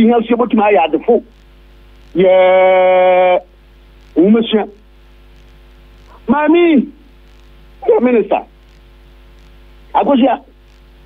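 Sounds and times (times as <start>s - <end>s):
person talking: 4.1s - 4.8s, 7.8s - 8.5s, 9.9s - 10.6s.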